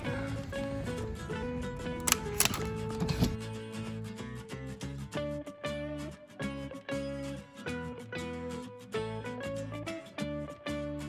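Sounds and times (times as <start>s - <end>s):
background music: 0.0s - 11.0s
door lock clicks: 2.0s - 3.4s.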